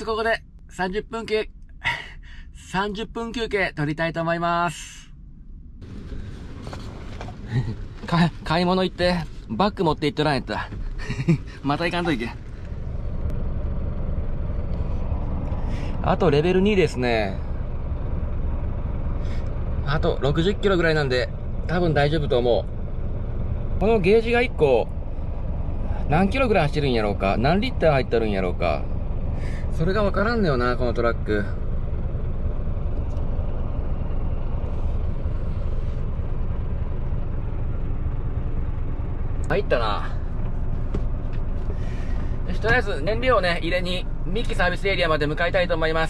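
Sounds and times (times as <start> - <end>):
diesel truck engine idling: 5.2 - 46.0.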